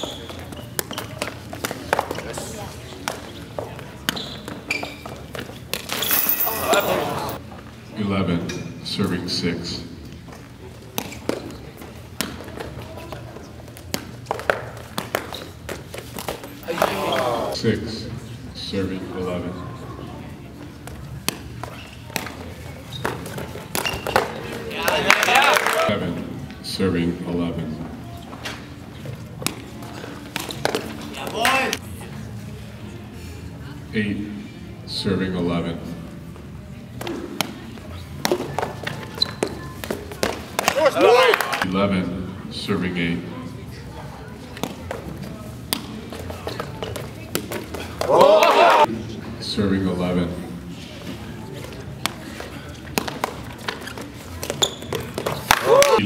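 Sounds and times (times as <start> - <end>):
shoes moving on court floor: 37.0 - 41.2, 51.1 - 56.0.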